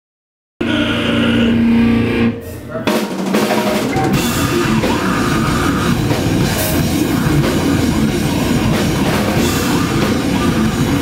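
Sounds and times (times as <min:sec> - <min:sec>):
live heavy metal band: 0:00.6 - 0:11.0
drum fill: 0:02.8 - 0:11.0.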